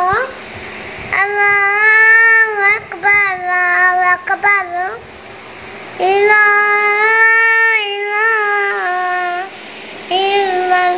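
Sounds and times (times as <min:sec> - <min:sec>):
boy chanting call to prayer: 0:00.0 - 0:00.5, 0:01.1 - 0:05.2, 0:05.8 - 0:10.9.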